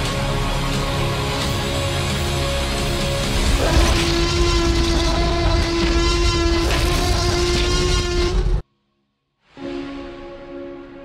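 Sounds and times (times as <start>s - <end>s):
deep rumble: 2.8s - 8.6s
loud horn-like blast: 3.5s - 8.6s.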